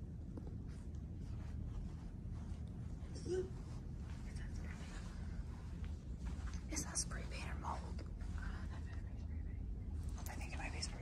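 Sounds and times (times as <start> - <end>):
person whispering: 10.2 - 11.0.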